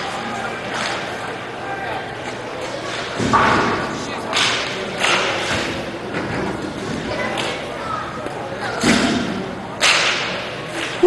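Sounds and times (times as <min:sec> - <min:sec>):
hockey sticks and puck clacking: 0:00.6 - 0:01.2, 0:02.2 - 0:11.0.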